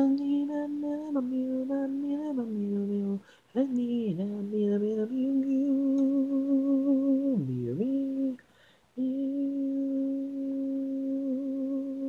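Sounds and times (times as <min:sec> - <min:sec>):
person singing a long note: 0:09.0 - 0:12.0.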